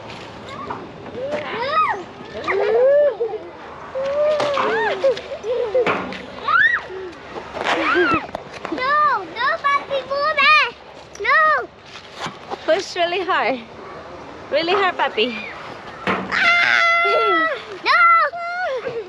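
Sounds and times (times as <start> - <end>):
child squealing: 6.4 - 7.1, 16.3 - 18.8.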